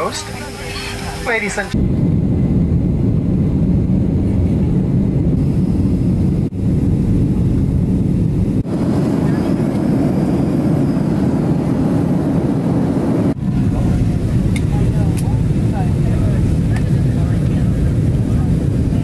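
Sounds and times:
jet engines heard inside cabin: 0.0s - 19.0s.

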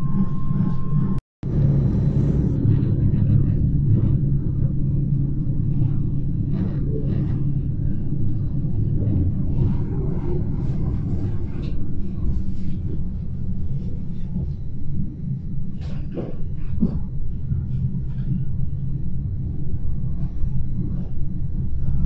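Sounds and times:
train rumble from inside: 0.0s - 22.0s.

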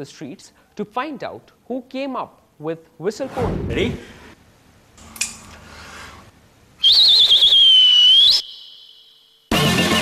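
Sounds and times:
finger whistle: 6.8s - 9.5s
music with steady beat: 9.5s - 10.0s.

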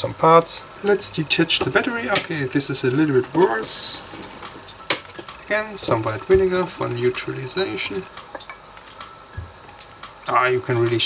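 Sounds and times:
glass bottle clinking: 8.2s - 8.7s.

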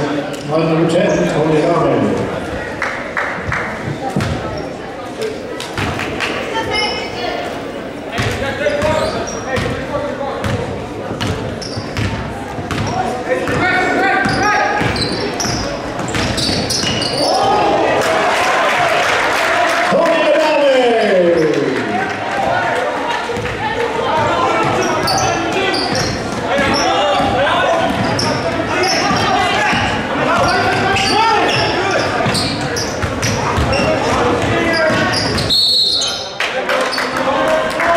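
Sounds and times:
echoing voices: 0.0s - 37.9s.

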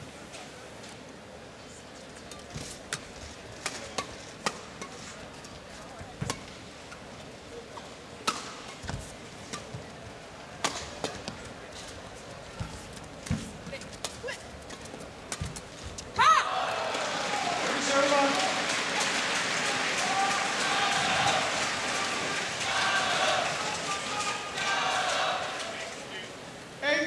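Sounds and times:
arena background noise: 0.0s - 27.0s
rackets hitting shuttlecock: 2.3s - 5.1s, 8.2s - 9.9s, 10.6s - 11.5s.

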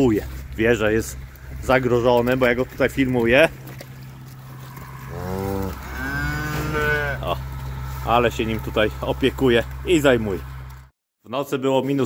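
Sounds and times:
cow mooing: 4.3s - 9.2s.

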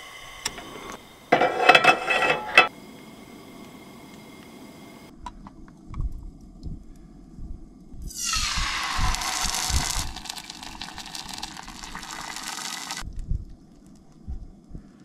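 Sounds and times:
pan handling bumps: 1.3s - 2.7s
sauce sizzling in a frying pan: 8.1s - 13.0s.

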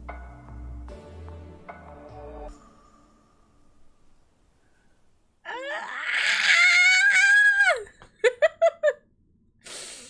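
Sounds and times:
woman squealing with delight: 5.5s - 8.0s.

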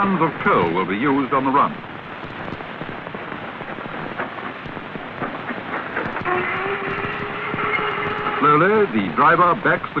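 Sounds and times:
steam hissing: 3.8s - 9.8s
clanks and knocks: 4.1s - 8.4s.

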